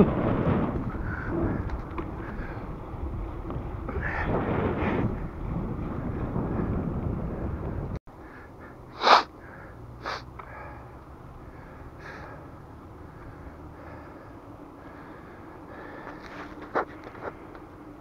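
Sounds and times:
wind buffeting microphone: 0.0s - 8.0s
loud breath: 8.2s - 16.5s.

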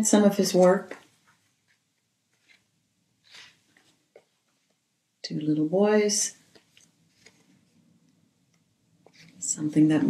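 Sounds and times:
paper pages rustling: 0.6s - 4.3s, 6.5s - 7.8s, 9.0s - 9.4s.

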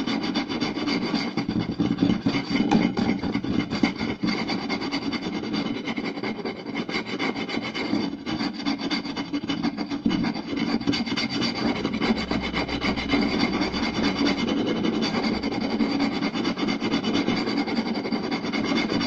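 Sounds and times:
fingers scratching wooden plate: 0.0s - 19.0s.

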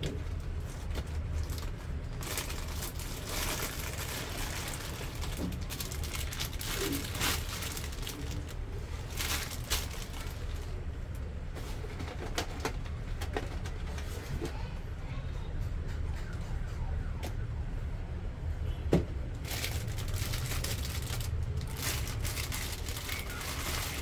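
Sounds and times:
plastic bag and cardboard rustling: 0.0s - 14.5s, 19.4s - 24.0s
dove cooing: 6.6s - 8.4s.

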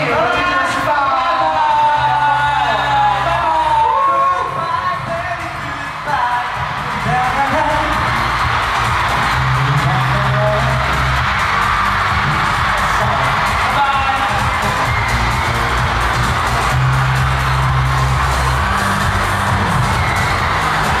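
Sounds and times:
audience noise: 0.0s - 21.0s
pop song over sound system: 0.0s - 21.0s.

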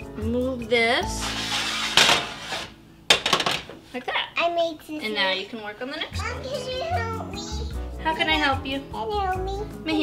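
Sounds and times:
background music: 0.0s - 10.0s
metal cookie sheet clattering: 1.2s - 3.8s.

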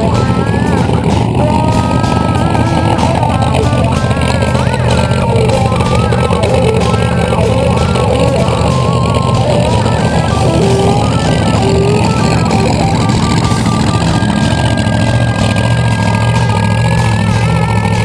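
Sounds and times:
car engine idling deep rumble: 0.0s - 18.0s.

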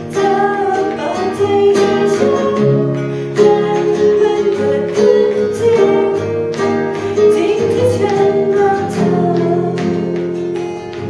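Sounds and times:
acoustic guitar strumming: 0.0s - 11.0s
woman singing: 0.0s - 11.0s.

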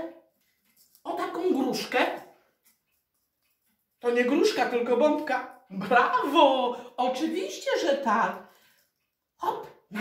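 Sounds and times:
woman speaking: 1.0s - 2.3s, 4.0s - 8.4s, 9.4s - 10.0s.

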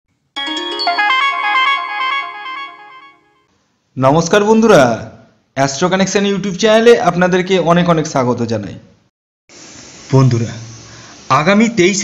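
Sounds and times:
synthesized chime jingle: 0.4s - 3.5s.

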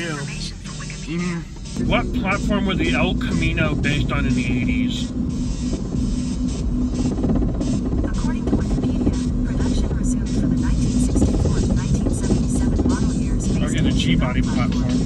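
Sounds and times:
music playing: 0.0s - 15.0s
road and engine noise in car: 0.0s - 15.0s.

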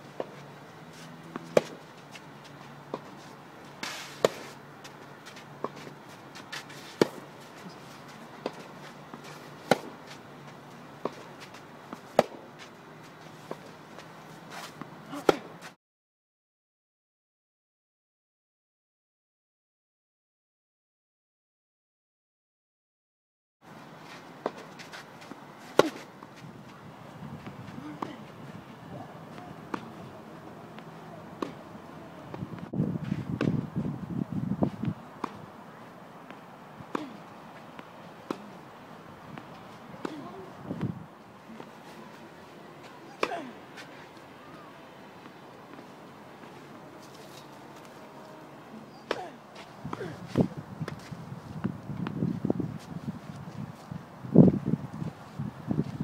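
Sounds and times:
racket hitting tennis ball: 0.2s - 12.7s, 13.4s - 15.6s, 24.1s - 26.4s, 29.2s - 33.6s, 34.7s - 35.6s, 36.2s - 48.1s, 48.8s - 52.2s
scuffing hiss: 0.2s - 14.9s
loud racket hitting ball: 1.4s - 1.8s, 25.7s - 26.1s
faint distant racket hits: 29.3s - 31.7s.

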